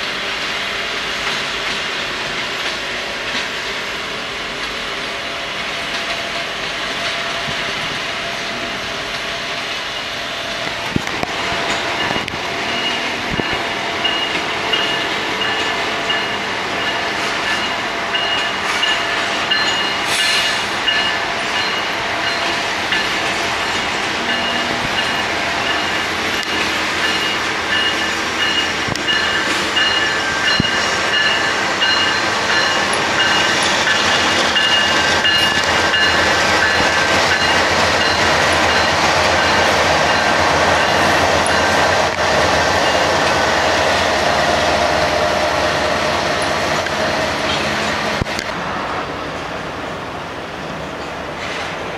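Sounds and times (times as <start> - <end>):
diesel locomotives passing: 0.0 - 51.9
freight train wheels rumbling: 0.0 - 51.9.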